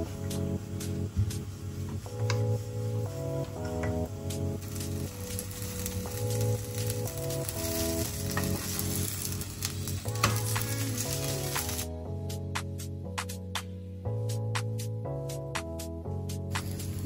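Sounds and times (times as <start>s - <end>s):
background music with chords: 0.0s - 17.0s
flatbread sizzling on a pan: 4.4s - 11.9s, 16.5s - 17.0s.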